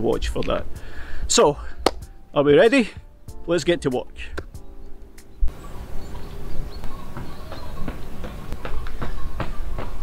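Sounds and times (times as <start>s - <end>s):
wind rumbling on microphone: 5.3s - 10.0s
running footsteps on pavement: 6.1s - 10.0s.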